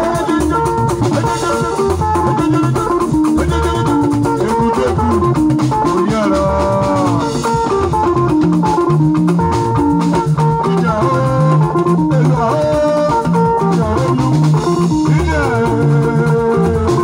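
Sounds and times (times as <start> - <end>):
bass line: 0.0 - 17.0
drum kit: 0.0 - 17.0
hand drums: 0.0 - 17.0
sliding electric guitar melody: 0.0 - 17.0.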